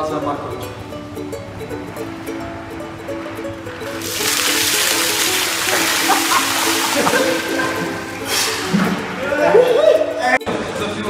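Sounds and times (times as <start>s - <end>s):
background music with held notes: 0.0s - 11.0s
water pouring and splashing: 3.7s - 9.3s.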